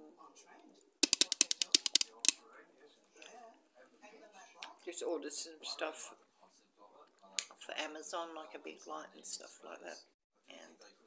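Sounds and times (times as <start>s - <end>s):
fingernails tapping: 1.0s - 2.4s.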